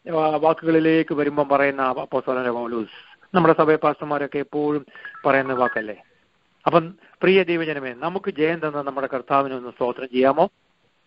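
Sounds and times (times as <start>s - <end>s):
man talking on phone line: 4.8s - 6.0s
telephone keypad tones: 5.0s - 5.9s.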